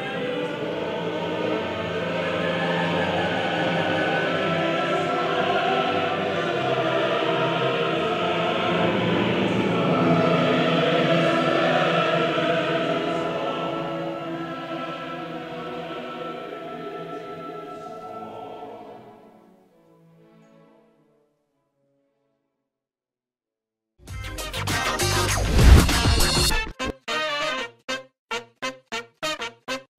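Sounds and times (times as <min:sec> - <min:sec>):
orchestra and choir performing: 0:00.0 - 0:21.2.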